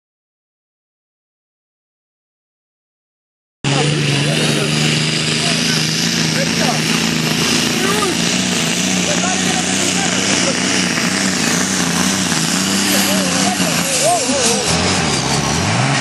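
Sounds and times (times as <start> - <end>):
tractor engine revving: 3.6 - 16.0
voices: 3.7 - 16.0.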